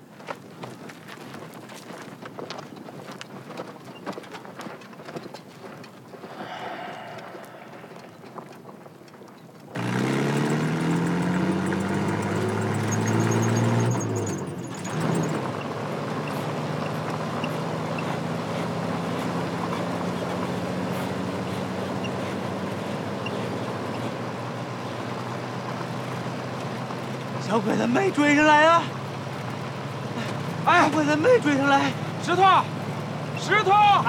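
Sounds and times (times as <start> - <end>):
truck engine revving: 9.8 - 34.0.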